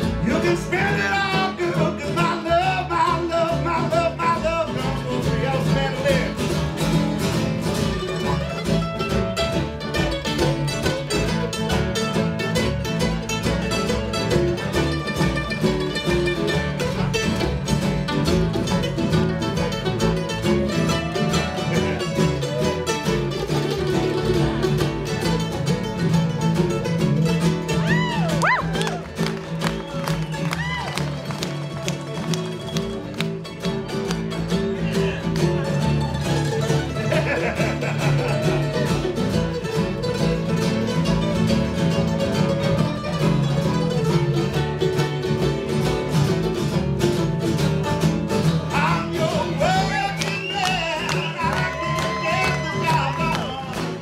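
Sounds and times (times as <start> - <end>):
acoustic guitars: 0.0 - 54.0
fiddle: 0.0 - 54.0
mandolin: 0.0 - 54.0.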